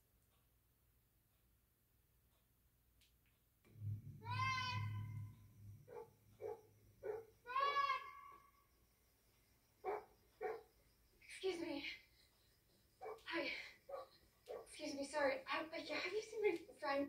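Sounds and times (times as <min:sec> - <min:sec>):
animal high falling calls: 0:04.1 - 0:05.3.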